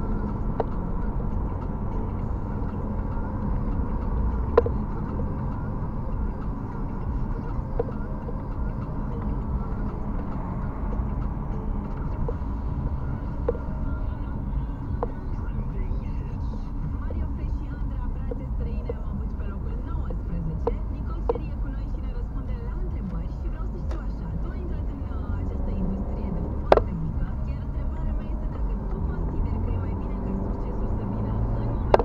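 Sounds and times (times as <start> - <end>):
car road and engine rumble: 0.0 - 32.0.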